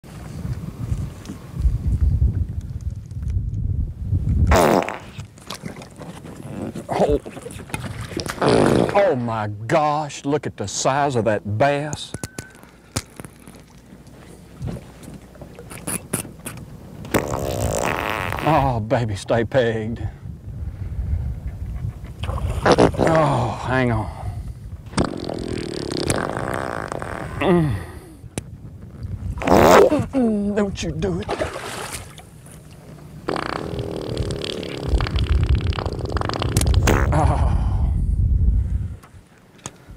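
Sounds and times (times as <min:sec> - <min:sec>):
low rumble of water and boat: 0:00.0 - 0:39.9
fart sound effect: 0:04.5 - 0:05.2, 0:08.4 - 0:09.0, 0:17.1 - 0:18.6, 0:22.2 - 0:23.2, 0:24.9 - 0:27.6, 0:29.4 - 0:30.1, 0:33.3 - 0:37.4
squeak falling in pitch: 0:12.2 - 0:12.7.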